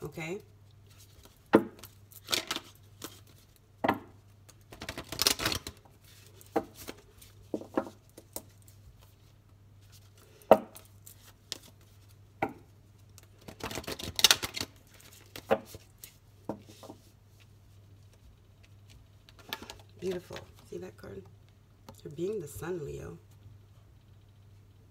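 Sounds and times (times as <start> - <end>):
cards rustling: 0.9 - 3.6, 4.5 - 12.2, 13.2 - 17.5
cards tapping and knocking: 3.8 - 5.8, 6.4 - 8.5, 13.4 - 17.1.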